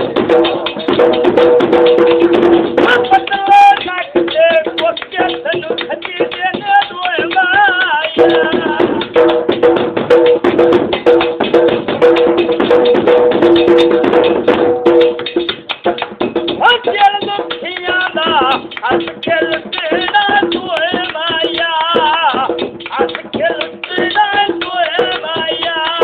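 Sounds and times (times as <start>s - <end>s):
drum beaten in fast rhythm: 0.0s - 26.0s
person singing: 2.3s - 9.3s, 16.5s - 26.0s.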